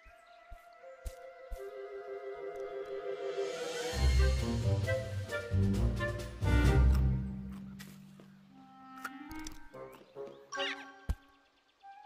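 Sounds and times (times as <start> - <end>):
orchestral film score: 0.0 - 12.0.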